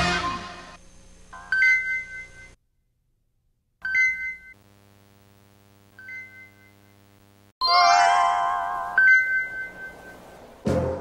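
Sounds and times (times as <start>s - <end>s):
bell-like two-tone logo chime: 7.6s - 10.2s.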